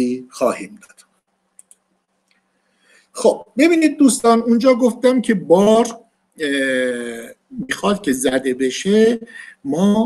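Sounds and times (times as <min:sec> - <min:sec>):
faint short clicks: 0:01.6 - 0:02.4.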